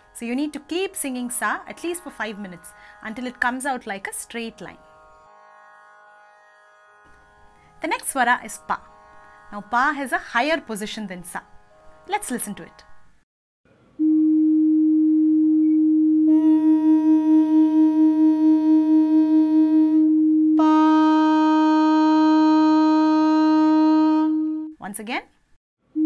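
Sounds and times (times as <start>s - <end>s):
woman humming: 14.0s - 24.7s.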